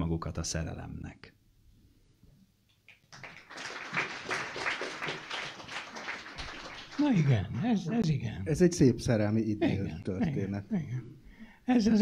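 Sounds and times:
audience applauding: 2.9 - 7.7.

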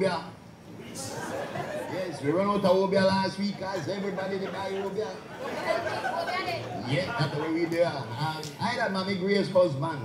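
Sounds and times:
people chattering: 0.7 - 10.0.

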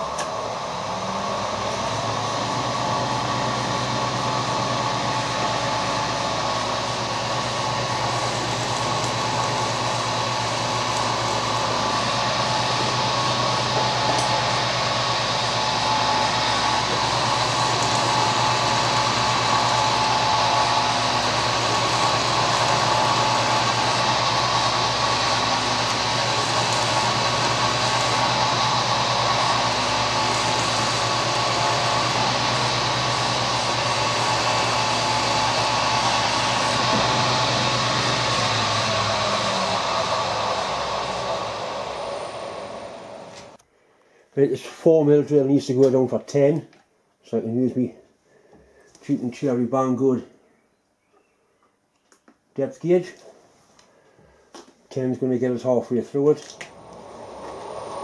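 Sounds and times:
milling machine spindle whine: 0.0 - 43.6, 56.2 - 58.0.

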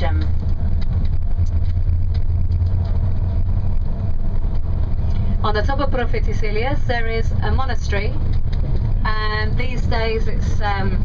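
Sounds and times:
bus engine and tyres rumbling: 0.0 - 11.0.

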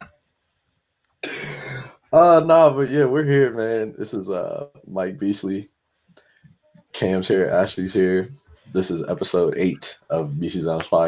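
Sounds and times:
person clearing throat: 1.2 - 2.0.

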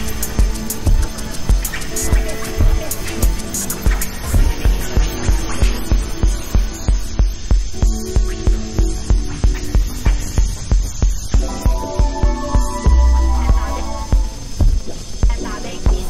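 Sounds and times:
humming held electronic tones: 0.0 - 16.0
deep bass pulse: 4.4 - 14.9.

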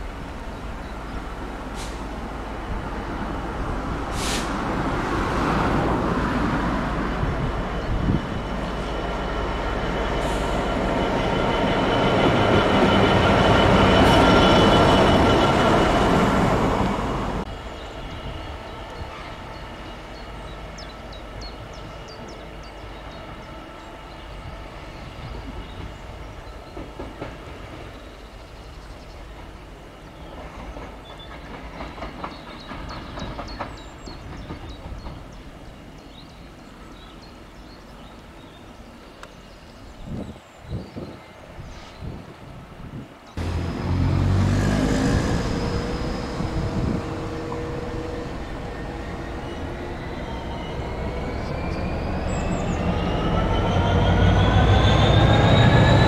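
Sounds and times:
diesel locomotive passing: 0.0 - 40.3, 41.2 - 56.0
distant train moving: 0.0 - 40.3, 41.2 - 56.0.

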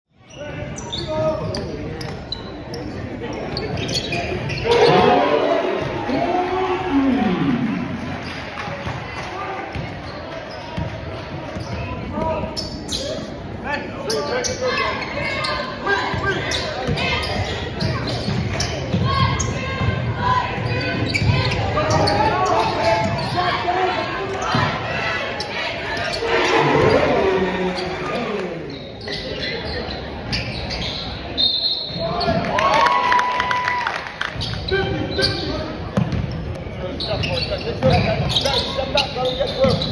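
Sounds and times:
shoe squeaks: 0.2 - 5.2, 11.5 - 13.4, 14.0 - 19.8, 20.6 - 23.6, 28.7 - 32.4, 34.4 - 39.9
spectators talking and calling out: 0.3 - 33.7.

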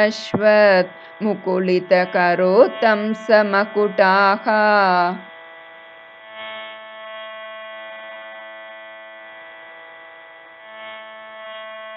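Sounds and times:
drone with overtones: 0.0 - 11.9.

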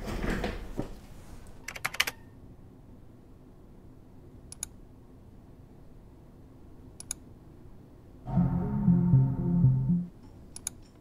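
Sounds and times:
computer keyboard keystrokes: 1.7 - 2.2
quick clicks: 1.7 - 2.2.

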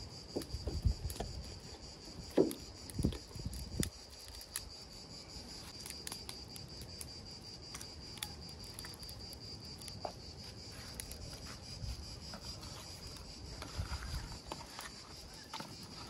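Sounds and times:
insects chirring: 0.0 - 16.0
wood fire crackling: 0.2 - 16.0.

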